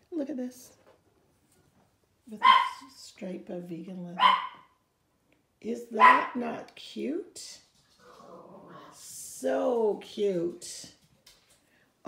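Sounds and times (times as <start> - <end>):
small dog barking: 2.4 - 2.9, 4.2 - 4.8, 6.0 - 6.4.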